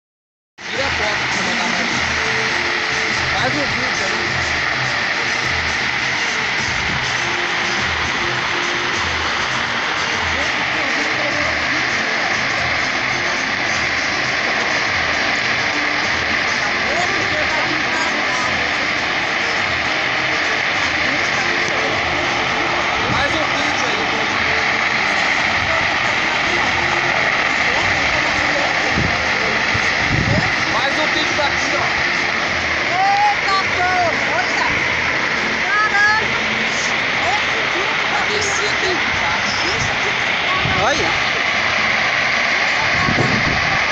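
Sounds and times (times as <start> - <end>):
faint music: 0.6 - 43.9
faint voices: 0.6 - 43.9
fire burning and crackling: 0.6 - 43.9.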